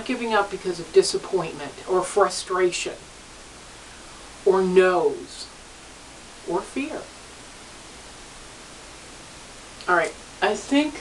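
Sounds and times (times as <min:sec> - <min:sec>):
woman speaking: 0:00.0 - 0:03.1, 0:04.4 - 0:05.6, 0:06.4 - 0:07.2, 0:09.8 - 0:11.0
steady recording hiss: 0:00.0 - 0:11.0.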